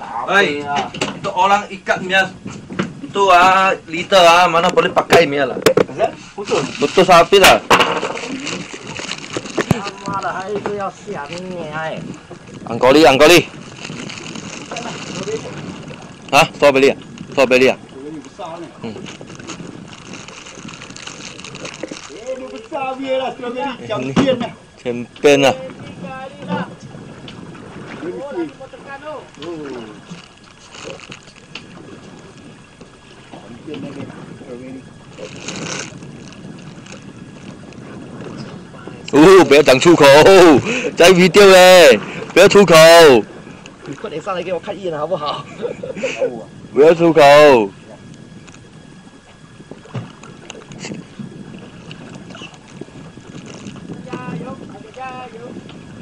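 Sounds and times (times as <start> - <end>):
sea noise: 0.0 - 56.0
water moving around boat: 0.0 - 56.0
wind: 0.0 - 56.0.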